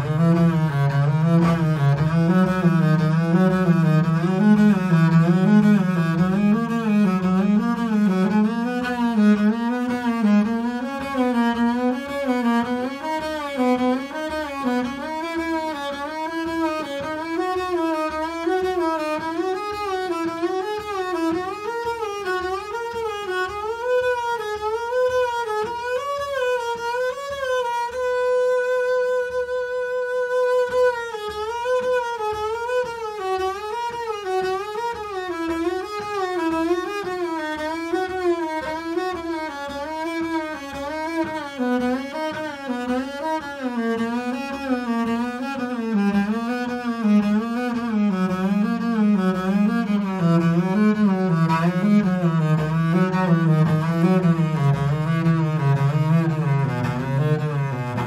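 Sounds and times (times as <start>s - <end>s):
bowed double bass: 0.0s - 58.0s.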